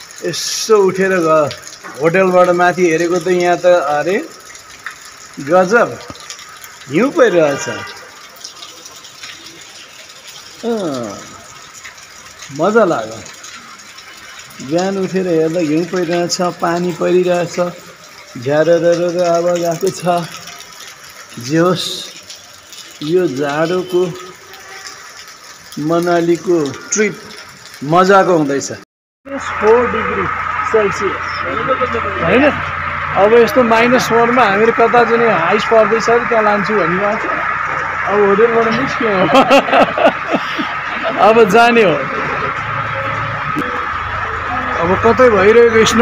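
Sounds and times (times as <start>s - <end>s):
outdoor background noise: 0.0s - 46.0s.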